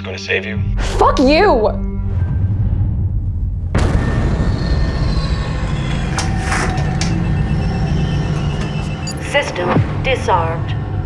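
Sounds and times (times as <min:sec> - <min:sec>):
low bass drone: 0:01.8 - 0:11.0
sustained rumbling swell: 0:01.9 - 0:11.0
boom hit: 0:02.1 - 0:09.0.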